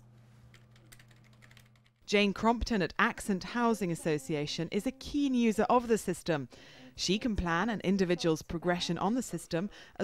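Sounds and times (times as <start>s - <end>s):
low steady hum: 0.0s - 10.0s
keyboard typing: 0.5s - 2.1s.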